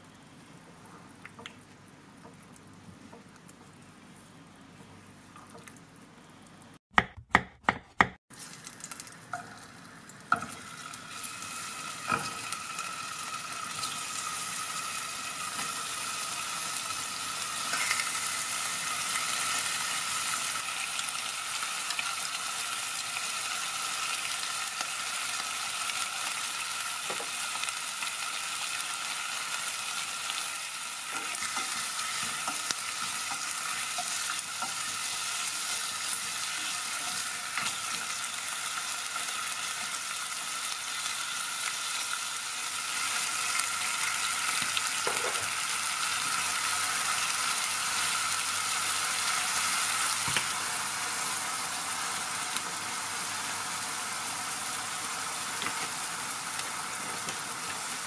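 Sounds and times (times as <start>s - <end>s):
spatula taps and scrapes: 7.0s - 8.2s
chicken sizzling in pot: 8.3s - 58.0s.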